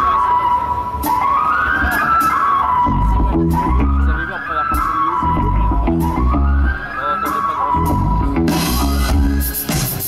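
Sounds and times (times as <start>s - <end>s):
bass: 0.0s - 10.0s
live rock band: 0.0s - 10.0s
sliding lead guitar line: 0.0s - 10.0s
cymbals: 7.1s - 10.0s.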